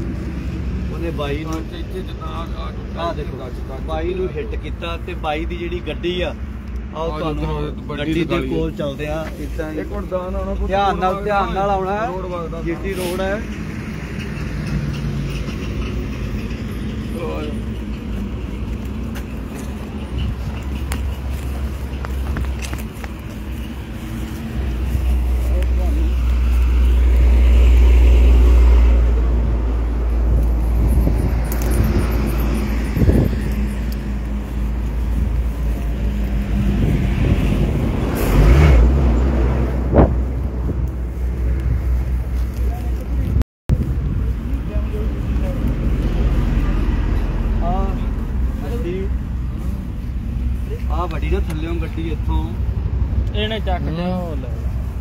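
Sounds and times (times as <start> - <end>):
highway traffic rumble: 0.0 - 55.0.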